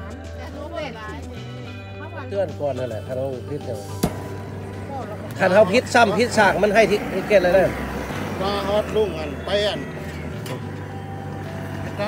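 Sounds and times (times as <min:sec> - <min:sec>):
propane torch roaring: 0:02.9 - 0:12.0.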